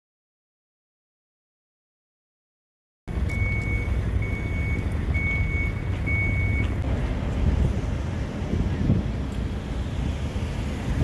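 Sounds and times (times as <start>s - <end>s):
vehicle reversing alarm beeps: 3.1s - 6.8s.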